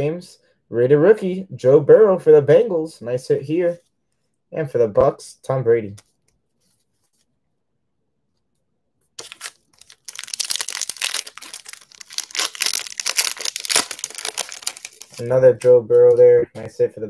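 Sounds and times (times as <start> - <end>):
foil wrapper crinkling and tearing: 9.2 - 15.8.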